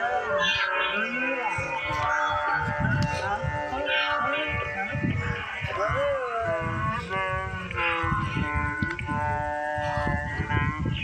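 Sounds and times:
music: 0.0s - 11.0s
cartoon character voices: 0.2s - 2.5s.

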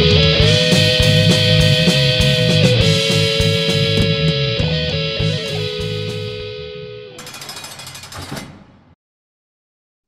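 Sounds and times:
harsh rapid rattling: 7.2s - 9.0s.

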